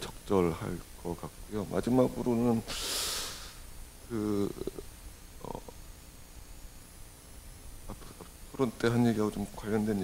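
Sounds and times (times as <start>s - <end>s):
low room noise: 0.0s - 10.0s
soft breath or hesitation: 2.7s - 3.6s.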